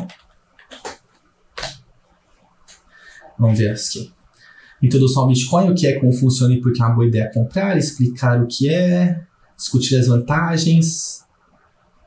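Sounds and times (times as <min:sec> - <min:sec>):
keyboard keystroke: 0:00.0 - 0:01.0.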